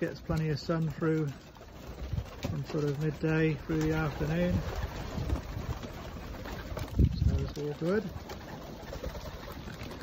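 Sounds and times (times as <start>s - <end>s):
pigeons cooing: 0.0s - 10.0s
wind on microphone: 4.1s - 7.6s.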